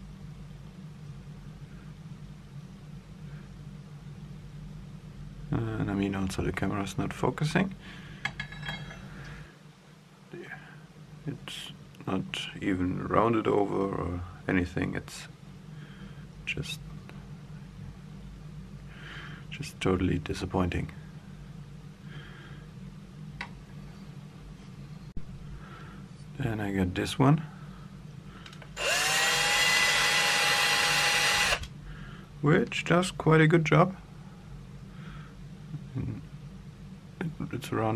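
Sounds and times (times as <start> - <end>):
cordless drill whining: 28.8 - 31.7.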